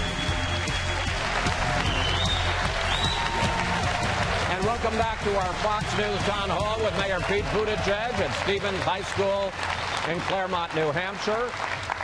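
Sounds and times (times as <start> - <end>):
news theme music: 0.0 - 10.2
audience applauding: 0.0 - 12.0.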